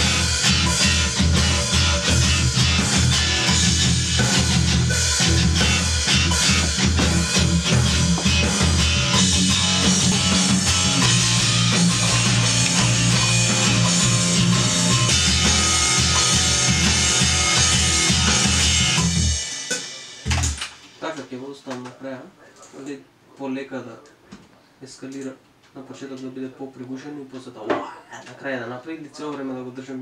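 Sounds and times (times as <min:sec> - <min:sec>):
distorted electric guitar: 0:00.0 - 0:21.0
heavy rock music: 0:00.0 - 0:21.0
drum kit driving beat: 0:00.0 - 0:21.8.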